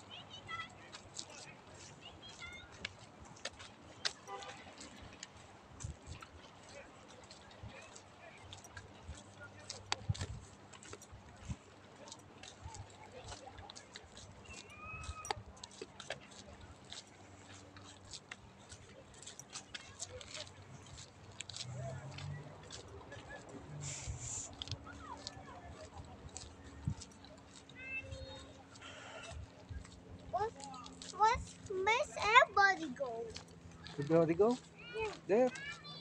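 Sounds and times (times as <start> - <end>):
faint indistinct voices: 0.0 - 36.0.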